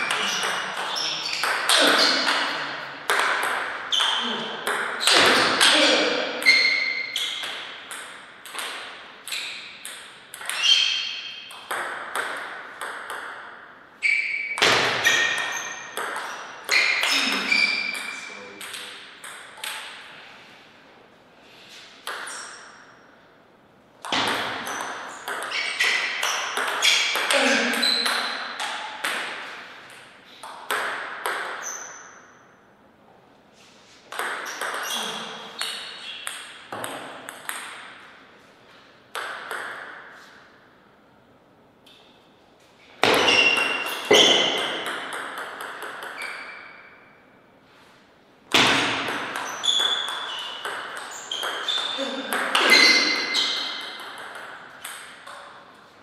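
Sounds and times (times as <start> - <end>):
ball bouncing on table: 0.0 - 13.4, 14.6 - 19.9, 24.0 - 29.5, 30.4 - 31.8, 34.1 - 38.0, 39.1 - 40.3, 43.0 - 46.6, 48.5 - 55.5
ball clicking off paddles: 6.4 - 13.6.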